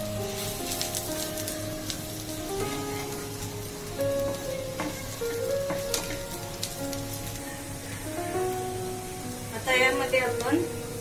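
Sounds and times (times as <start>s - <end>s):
background music with held notes: 0.0s - 11.0s
onions sizzling in oil: 0.0s - 11.0s.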